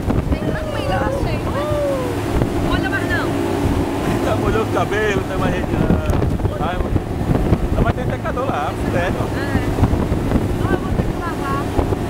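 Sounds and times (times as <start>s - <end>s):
motorboat engine drone: 0.0s - 12.0s
rushing water: 0.0s - 12.0s
wind buffeting microphone: 0.0s - 12.0s
people shouting: 0.4s - 2.4s.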